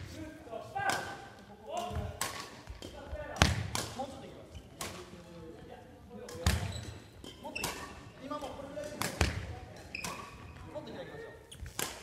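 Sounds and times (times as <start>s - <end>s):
badminton rackets hitting shuttlecocks: 0.9s - 4.0s, 6.2s - 8.1s, 11.7s - 12.0s.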